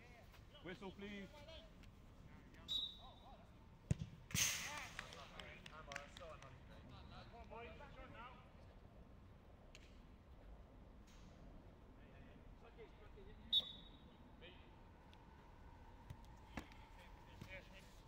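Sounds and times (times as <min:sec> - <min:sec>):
players' voices: 0:00.0 - 0:03.6, 0:12.0 - 0:18.0
football being kicked: 0:03.9 - 0:04.4
referee's whistle blast: 0:13.5 - 0:14.0.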